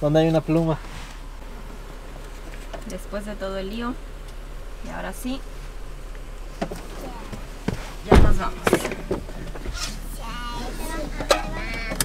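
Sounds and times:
car idling from inside: 0.0 - 12.0
soft voices: 6.8 - 8.6, 9.6 - 12.0.

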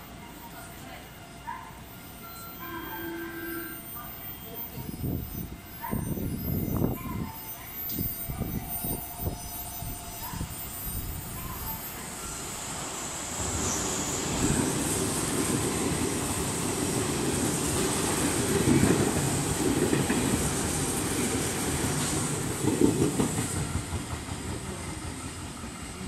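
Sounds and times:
electric train passing: 0.0 - 26.0.

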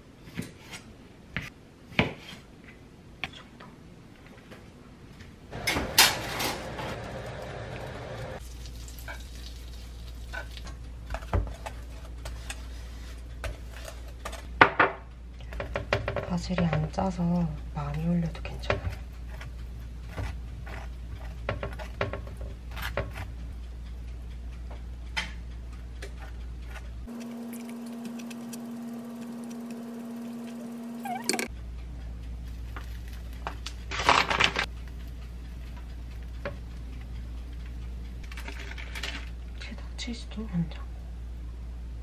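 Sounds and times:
low steady hum: 3.0 - 42.0
knife scraping and tapping: 18.6 - 23.3.

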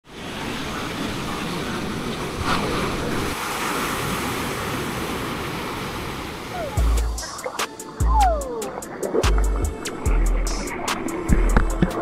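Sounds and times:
ocean surf breaking on beach: 0.0 - 11.3.

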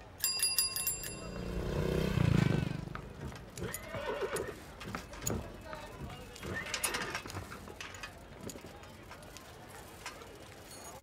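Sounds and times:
hoof clops: 1.2 - 7.6
horse whinnying: 3.6 - 4.6.

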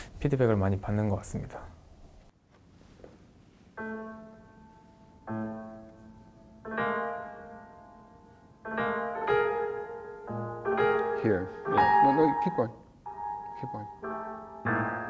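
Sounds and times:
piano chords ringing: 3.8 - 15.0.

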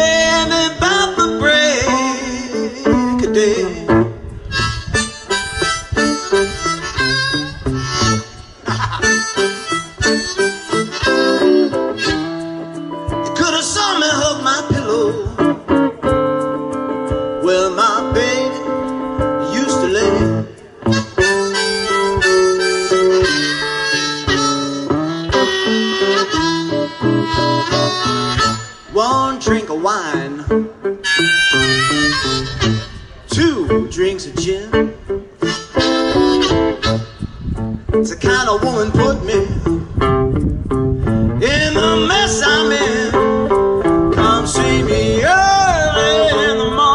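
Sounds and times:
man singing: 0.0 - 4.4, 11.0 - 15.8, 17.3 - 30.8, 32.1 - 37.0, 38.0 - 40.0, 41.4 - 46.9
guitar playing chords: 0.0 - 46.9.

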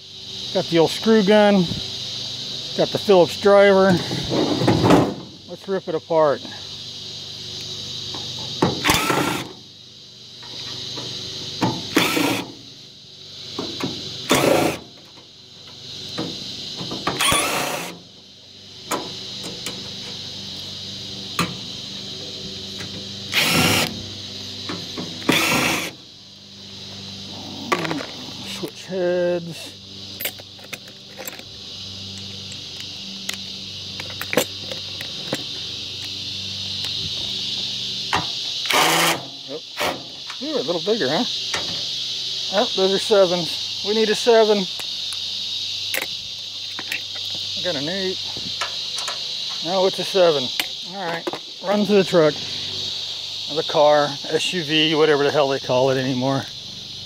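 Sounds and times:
insects chirring: 0.0 - 57.0.

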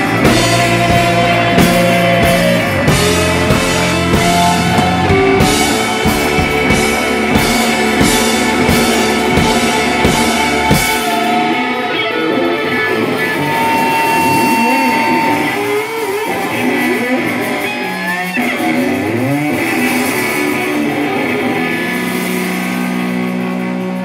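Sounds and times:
bass guitar: 0.0 - 24.0
electric guitar: 0.0 - 24.0.

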